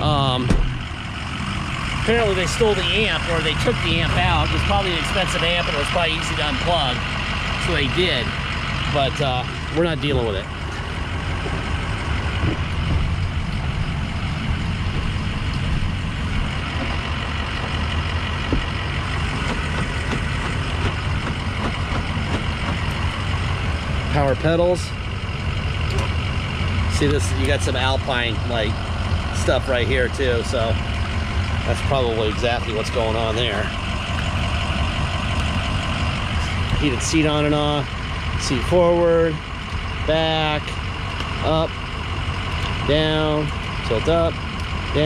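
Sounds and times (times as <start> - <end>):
diesel engine idling: 0.0 - 45.0.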